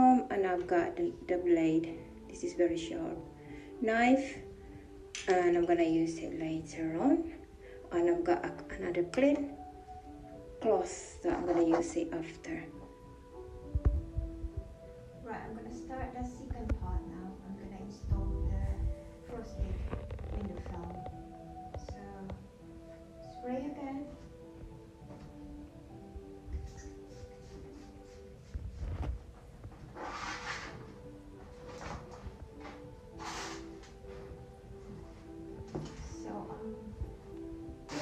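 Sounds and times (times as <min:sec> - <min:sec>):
soft background music: 0:00.0 - 0:38.0
low thumps: 0:13.6 - 0:14.9, 0:18.0 - 0:21.2
plastic film rustling and crinkling: 0:19.6 - 0:21.2.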